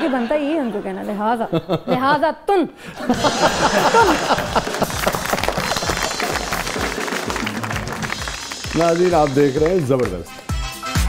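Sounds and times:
background music: 2.8s - 11.0s
hands clapping: 3.5s - 11.0s.

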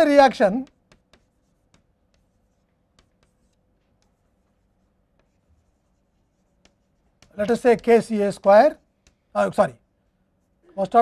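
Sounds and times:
chalk on blackboard: 0.0s - 9.6s.

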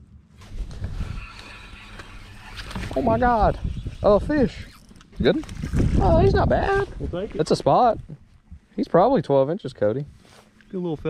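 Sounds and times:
wind rumble on microphone: 0.4s - 8.7s.

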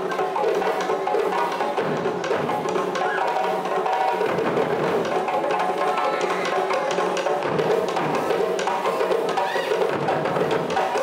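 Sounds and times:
drum ensemble playing: 0.0s - 11.0s.

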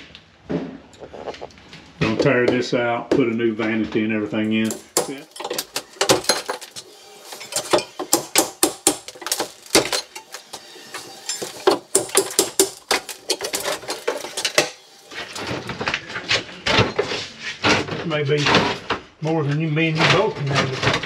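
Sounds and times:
tool knocking tile: 7.7s - 9.9s.

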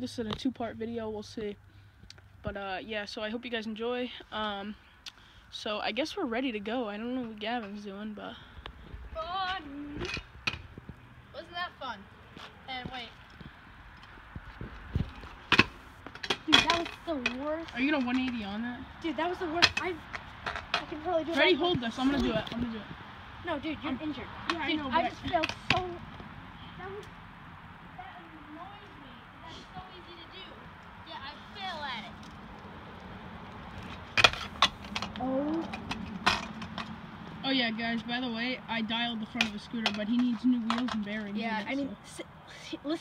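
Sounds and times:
scooter clacking on hard ground: 14.8s - 22.8s, 23.5s - 27.0s, 33.5s - 41.7s.

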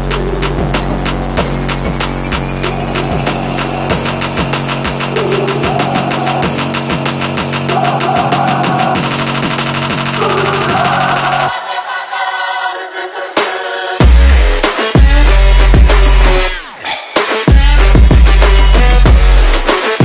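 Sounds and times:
bass line: 0.0s - 11.5s, 14.0s - 16.6s, 17.5s - 19.7s
rapid drum hits: 0.0s - 11.5s, 17.2s - 20.0s
electronic music: 0.0s - 20.0s.

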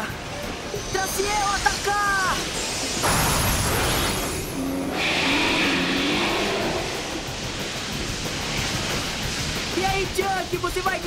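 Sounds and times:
rushing whooshing noise: 0.0s - 11.0s
high warbling tone: 0.7s - 7.7s.

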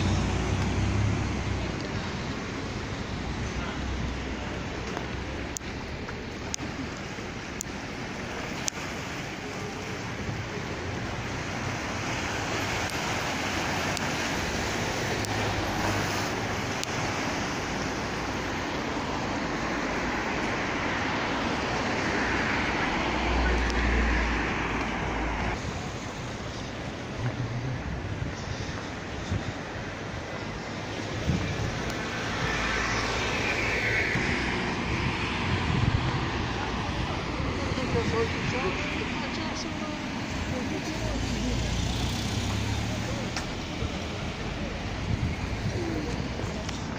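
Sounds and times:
cars passing on busy street: 0.0s - 46.9s.

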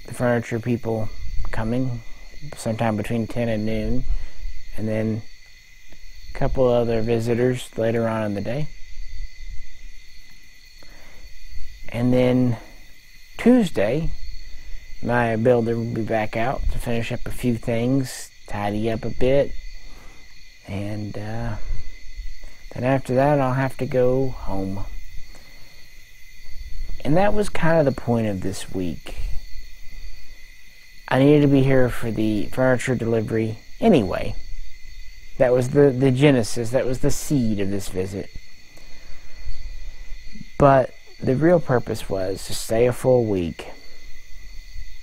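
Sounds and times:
crickets trilling: 0.0s - 45.0s
high insect chirring: 0.0s - 45.0s.

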